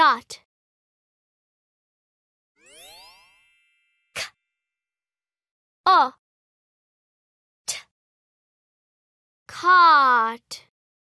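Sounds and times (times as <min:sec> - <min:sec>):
cartoon chime with upward glide: 0:02.6 - 0:04.3.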